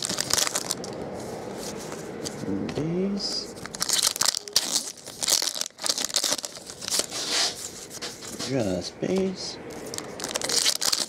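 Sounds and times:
foil wrapper tearing and crinkling: 0:00.0 - 0:01.0, 0:03.6 - 0:07.6, 0:09.8 - 0:11.0.

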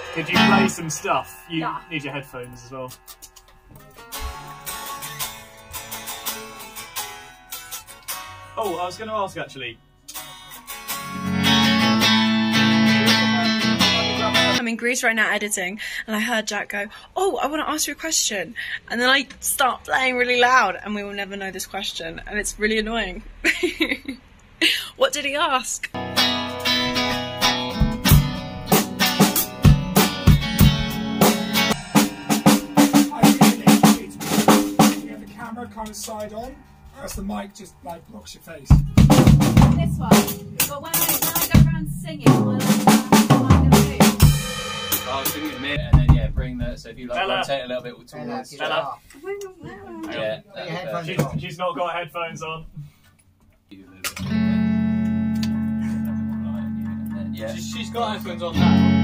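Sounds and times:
drum kit hits: 0:00.0 - 0:01.8, 0:26.0 - 0:36.6, 0:38.7 - 0:47.1
band playing loud: 0:00.0 - 0:02.0, 0:11.1 - 0:14.6, 0:26.0 - 0:37.3, 0:38.7 - 0:46.8, 0:54.3 - 0:59.0
electric guitar and bass notes: 0:00.0 - 0:08.6, 0:09.8 - 0:14.6, 0:26.0 - 0:46.8, 0:54.1 - 0:59.0.

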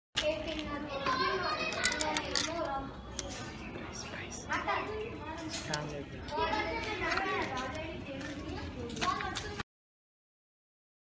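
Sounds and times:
children chattering and calling out: 0:00.2 - 0:09.6.

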